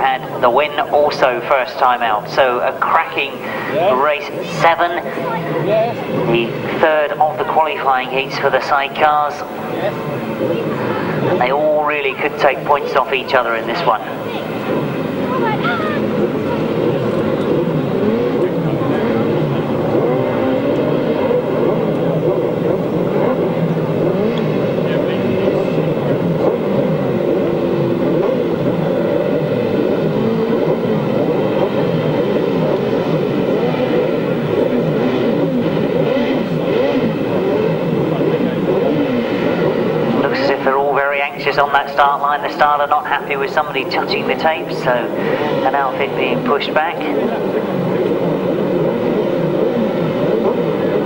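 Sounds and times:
racing engines revving: 0.0s - 51.0s.

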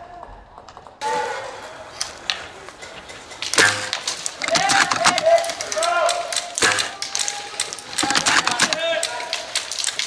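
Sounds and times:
airsoft gun firing: 3.6s - 5.6s, 8.0s - 9.0s.

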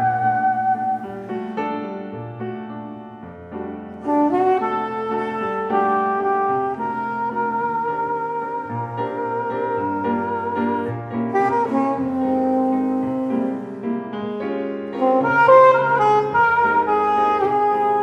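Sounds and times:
soprano saxophone melody: 0.0s - 1.6s, 4.0s - 18.0s
piano accompaniment: 0.0s - 18.0s.

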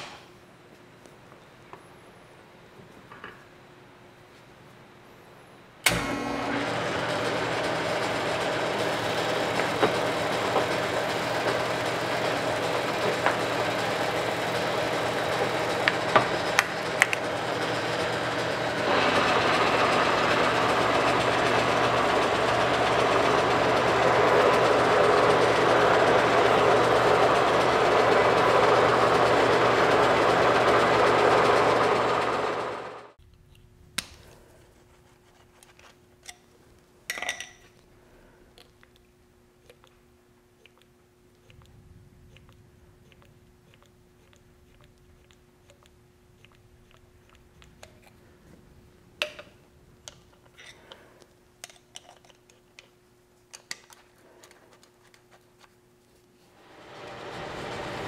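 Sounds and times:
milling machine running: 5.9s - 33.1s, 56.6s - 58.0s.

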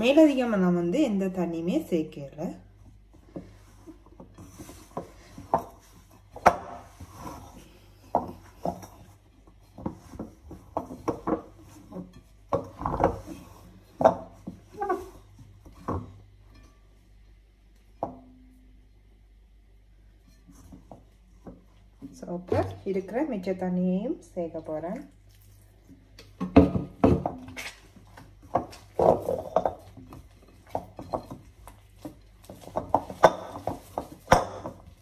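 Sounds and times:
dough squishing: 0.0s - 19.0s, 19.6s - 35.0s.

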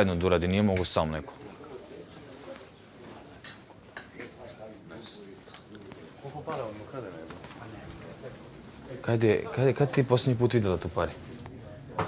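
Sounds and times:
low murmured speech: 1.1s - 12.0s.

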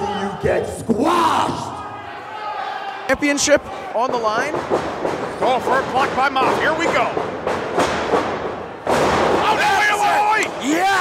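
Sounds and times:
wrestling crowd noise: 0.0s - 11.0s
thuds of wrestlers grappling: 6.8s - 9.6s.

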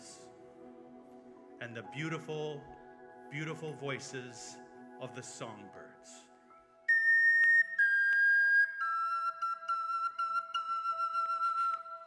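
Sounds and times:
flute playing held notes: 6.9s - 12.0s.

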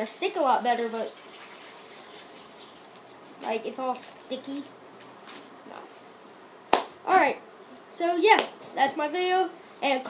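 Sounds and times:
people talking: 0.0s - 1.1s, 3.4s - 4.7s, 7.1s - 10.0s.

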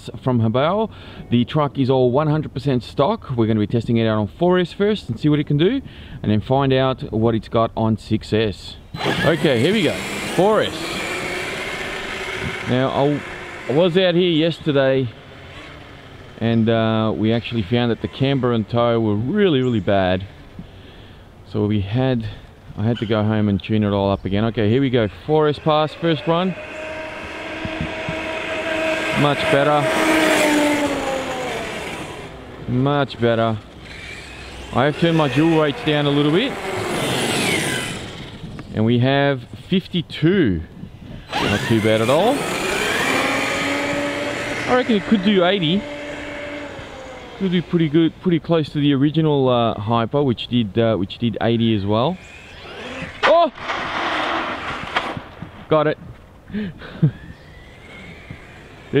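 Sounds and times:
electric motor whine: 9.0s - 19.3s, 24.6s - 38.7s, 41.2s - 48.4s, 52.1s - 55.4s, 56.9s - 59.0s.

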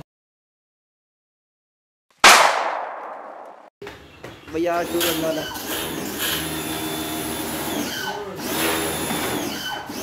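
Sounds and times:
loud metallic bang: 2.2s - 3.7s.

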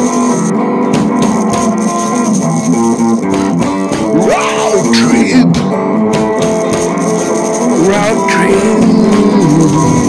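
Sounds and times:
bass guitar: 0.0s - 10.0s
guitar playing held notes: 0.0s - 10.0s.

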